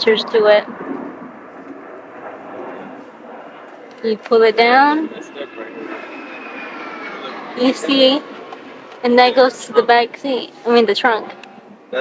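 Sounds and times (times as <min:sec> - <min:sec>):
faint whine falling in pitch: 0:00.0 - 0:10.7
steady background noise: 0:00.0 - 0:12.0.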